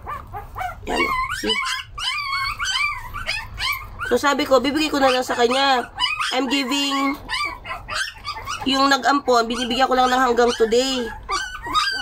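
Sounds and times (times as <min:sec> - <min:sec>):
puppies squealing and whimpering: 0:00.0 - 0:12.0.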